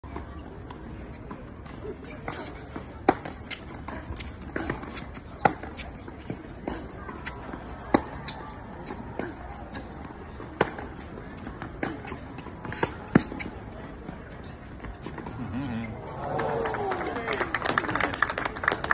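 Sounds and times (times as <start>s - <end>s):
tennis racket hitting ball: 1.6s - 15.3s.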